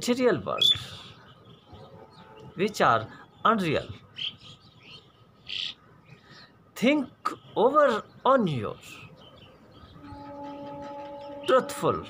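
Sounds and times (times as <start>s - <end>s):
small birds chirping: 0.0s - 12.0s.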